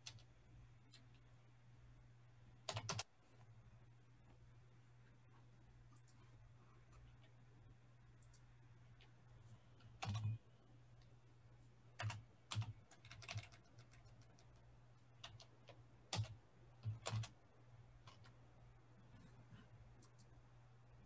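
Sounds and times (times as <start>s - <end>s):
computer keyboard typing: 0.0s - 1.2s, 2.6s - 3.1s, 9.8s - 10.4s, 12.0s - 17.4s, 18.0s - 18.4s, 20.0s - 20.3s.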